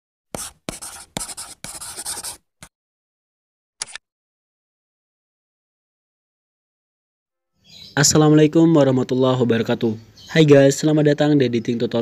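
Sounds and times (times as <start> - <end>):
pen scratching on paper: 0.3 - 2.5.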